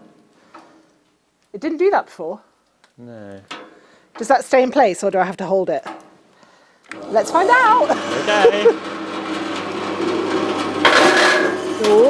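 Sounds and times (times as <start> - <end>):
electric motor humming: 6.9 - 12.0
loud harsh burst of noise: 7.0 - 11.8.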